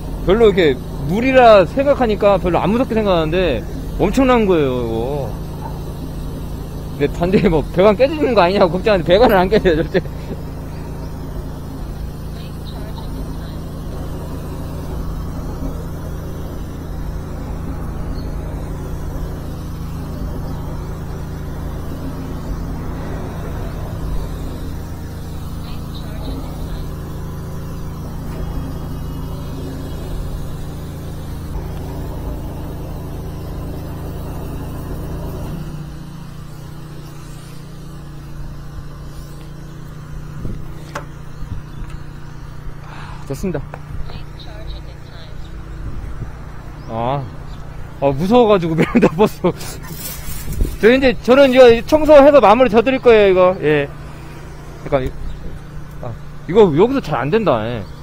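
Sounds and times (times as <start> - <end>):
sewer jetter engine and pump droning: 0.0 - 58.0.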